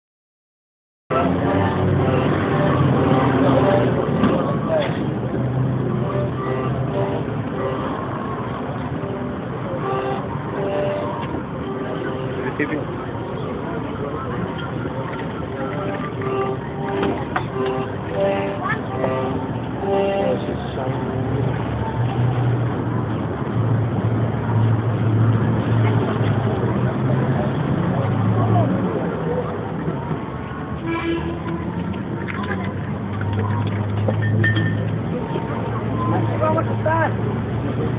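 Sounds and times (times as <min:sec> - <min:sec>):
people talking: 0:01.1 - 0:05.2, 0:05.8 - 0:23.2, 0:25.6 - 0:30.6, 0:31.2 - 0:33.9, 0:34.6 - 0:37.9
steady traffic noise: 0:01.1 - 0:37.9
vehicle engine hum: 0:01.1 - 0:37.9.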